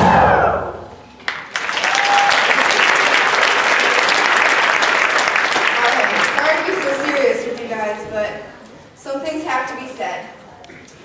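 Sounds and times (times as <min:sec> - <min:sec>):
audience applause: 0:01.2 - 0:07.7.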